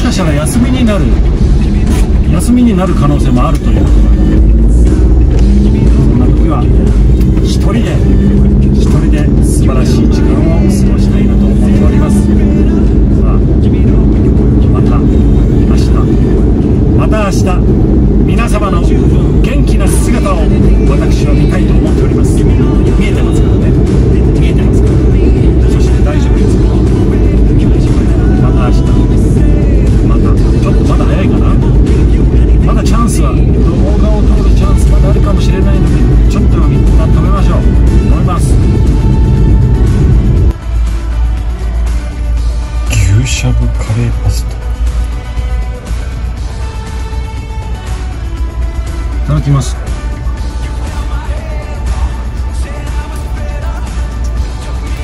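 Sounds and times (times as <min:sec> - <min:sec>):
man talking: 0:00.0 - 0:38.6, 0:42.8 - 0:44.6, 0:49.2 - 0:49.9
car road and engine noise: 0:00.0 - 0:55.0
music: 0:00.0 - 0:55.0.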